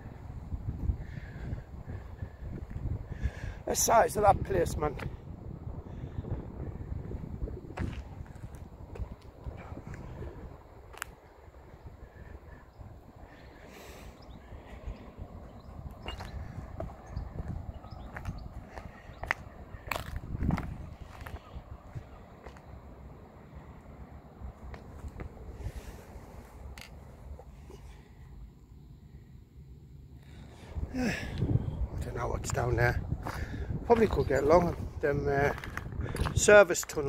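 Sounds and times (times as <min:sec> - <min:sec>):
wind rumble on microphone: 0:00.0 - 0:27.9, 0:30.1 - 0:37.0
footsteps on rubble: 0:07.8 - 0:09.3, 0:16.0 - 0:22.7, 0:33.2 - 0:37.0.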